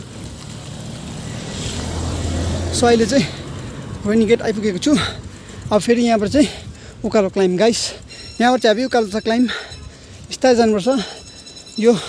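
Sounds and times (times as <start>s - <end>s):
car engine rumble: 0.0s - 11.5s
tyre noise on tarmac: 0.0s - 12.0s.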